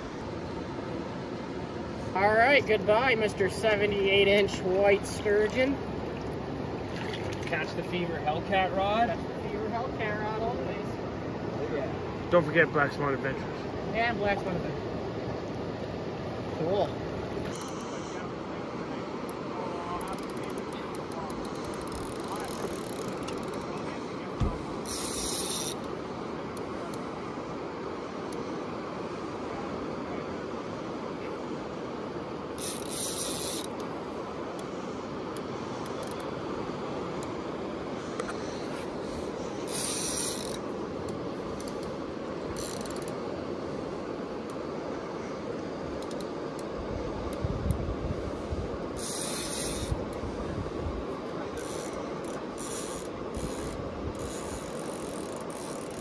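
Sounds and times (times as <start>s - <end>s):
steady rushing noise: 0.0s - 56.0s
fishing reel drag clicking: 17.4s - 18.2s, 20.0s - 23.7s, 24.8s - 25.9s, 32.6s - 33.9s, 35.3s - 36.4s, 39.6s - 42.0s, 42.6s - 43.2s, 46.0s - 46.7s, 49.0s - 50.1s, 51.6s - 56.0s.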